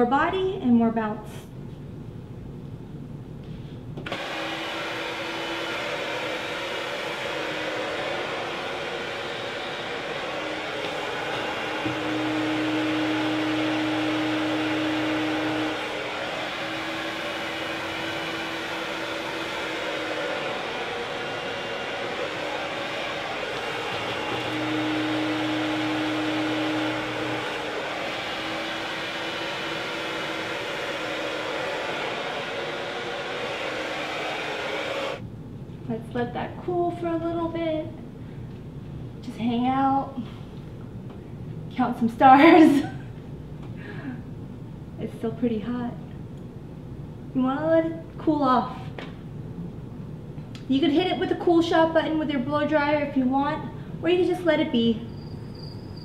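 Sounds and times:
hair dryer running: 0:04.0 - 0:35.2.

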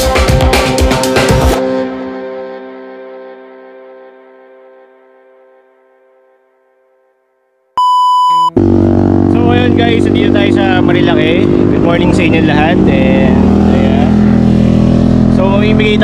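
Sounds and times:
electronic beep: 0:07.8 - 0:08.6
man talking loudly: 0:09.3 - 0:14.3, 0:15.3 - 0:16.0.

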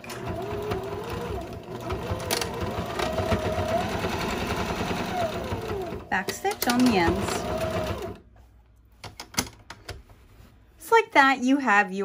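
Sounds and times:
woman speaking: 0:06.1 - 0:07.5, 0:10.8 - 0:12.0.

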